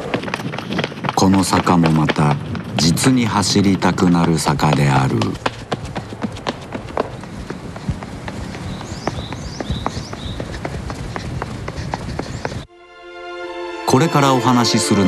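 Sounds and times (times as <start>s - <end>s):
outdoor background noise: 0.0s - 12.7s
running footsteps on pavement: 0.0s - 12.7s.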